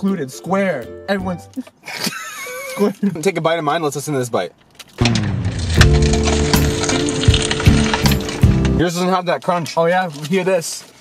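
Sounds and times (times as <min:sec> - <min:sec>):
crunching bite and chewing: 0:04.6 - 0:08.8.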